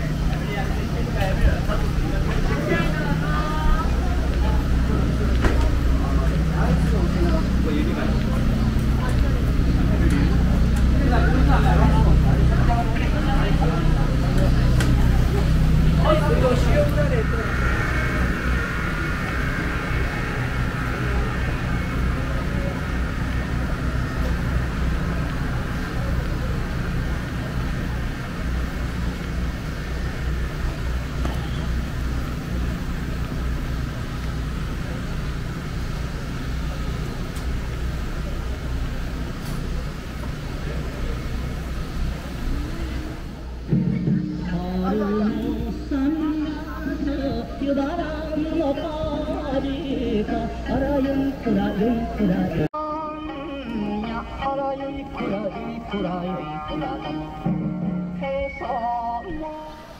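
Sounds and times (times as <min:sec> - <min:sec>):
higher-pitched drone: 0:00.0 - 0:39.2, 0:40.4 - 0:59.9
people talking: 0:00.0 - 0:52.7
steady low hum: 0:00.0 - 0:53.3.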